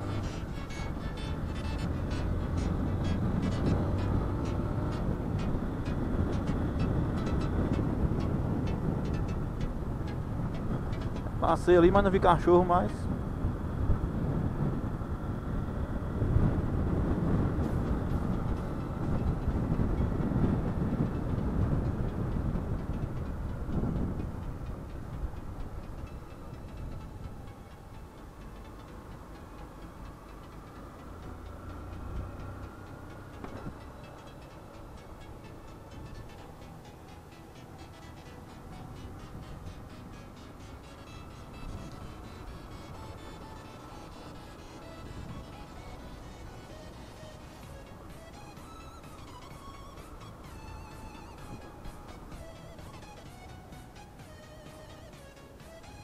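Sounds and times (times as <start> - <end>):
wind and road rush: 0.0 - 56.0.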